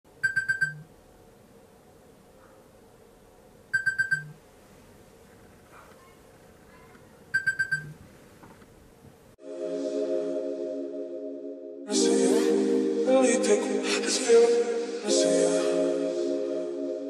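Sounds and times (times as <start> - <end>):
electronic alarm beeping: 0.2 - 0.8, 3.7 - 4.4, 7.4 - 7.9.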